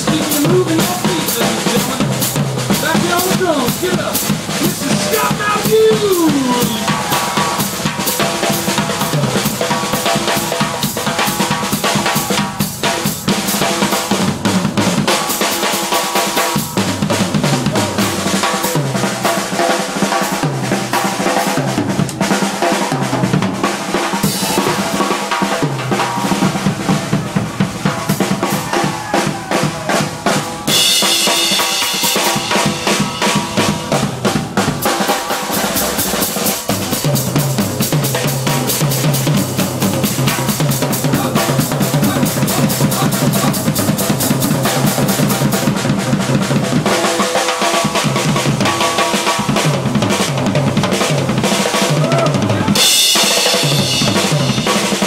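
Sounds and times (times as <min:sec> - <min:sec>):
snare and bass drum strokes: 0:00.0 - 0:55.0.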